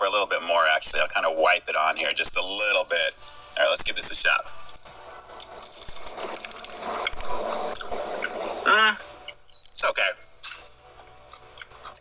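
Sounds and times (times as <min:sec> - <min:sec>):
steady high hiss: 0:00.0 - 0:10.2.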